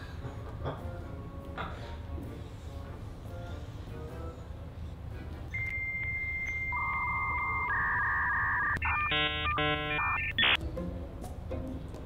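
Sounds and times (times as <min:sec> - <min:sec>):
electronic beeps: 0:05.6 - 0:10.6.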